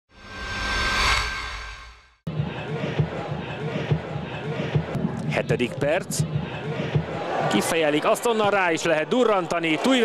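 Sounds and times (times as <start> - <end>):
synthesized whoosh: 0.1 - 2.3.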